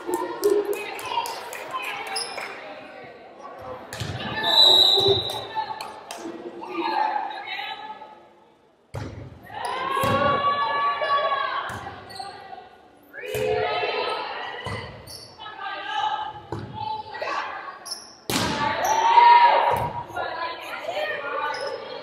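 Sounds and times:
players and spectators voices: 0.0s - 22.0s
volleyball hits echoing: 8.9s - 10.5s, 18.3s - 18.9s.

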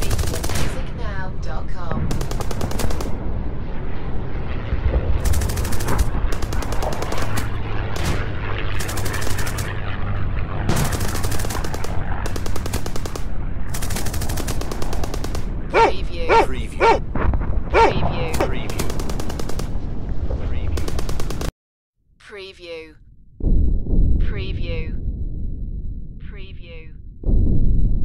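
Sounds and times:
automatic gunfire bursts: 0.0s - 0.8s
low rumble of battle noise: 0.0s - 21.5s.

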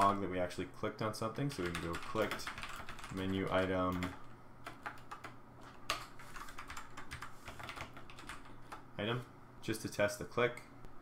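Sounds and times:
faint steady hum: 0.0s - 11.0s
typing on computer keyboard: 1.5s - 8.8s.

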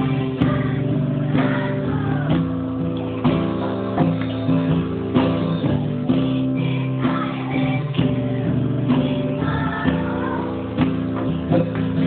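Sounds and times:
guitar strumming chords: 0.0s - 12.0s.

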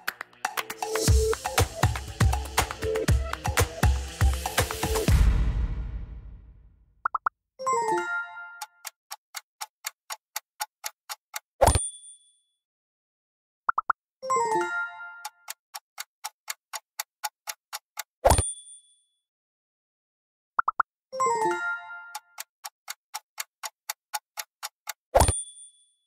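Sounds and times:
clock-like countdown ticks: 0.0s - 5.6s, 8.6s - 11.5s, 14.5s - 18.1s, 20.6s - 25.4s.

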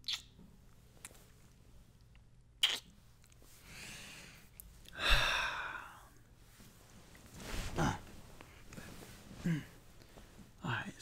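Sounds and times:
man sighing: 4.9s - 6.1s, 7.7s - 8.1s, 9.4s - 9.8s.

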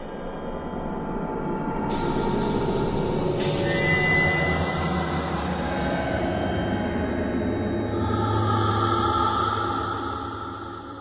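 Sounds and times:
low droning music: 0.0s - 11.0s.

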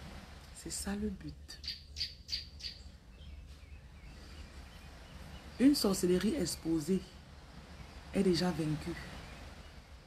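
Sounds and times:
bird chirping: 1.5s - 5.9s, 9.0s - 10.0s.

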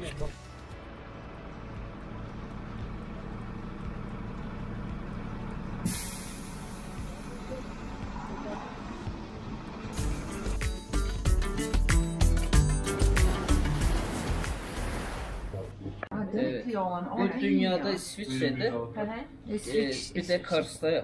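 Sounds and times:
vehicle engines rumbling: 0.0s - 10.6s
air brake hiss: 5.8s - 7.3s
music with a beat: 9.9s - 14.6s.

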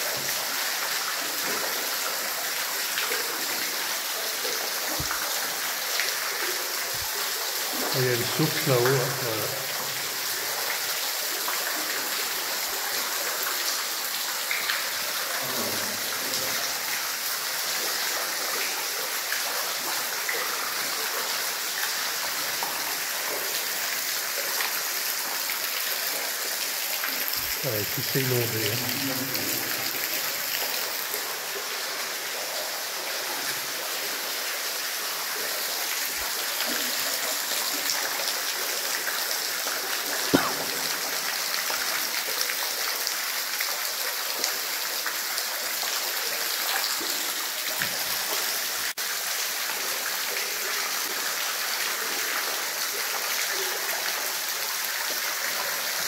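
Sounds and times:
water rushing underground: 0.0s - 56.0s.

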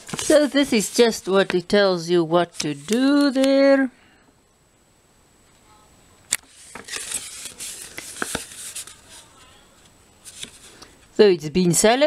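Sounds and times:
plastic pouch crinkling: 6.4s - 9.4s.

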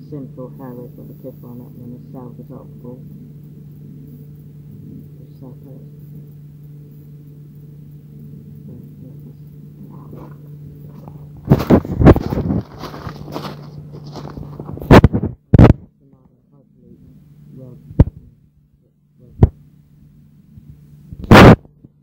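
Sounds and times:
steady low hum: 0.0s - 22.0s
microphone handling knocks and rustling: 9.9s - 15.9s.

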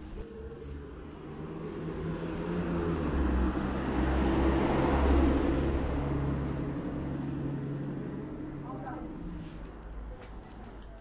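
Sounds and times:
car passing on road: 0.0s - 10.1s.

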